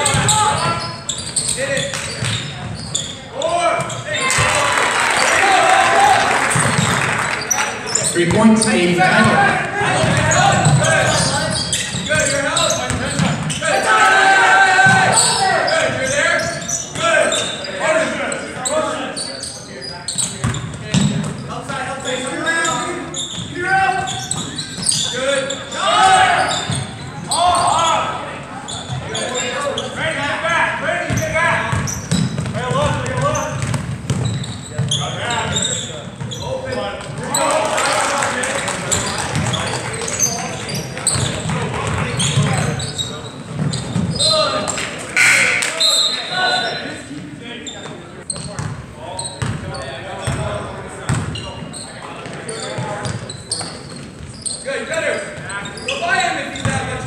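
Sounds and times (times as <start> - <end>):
voices of crowd in gym: 0.0 - 57.0.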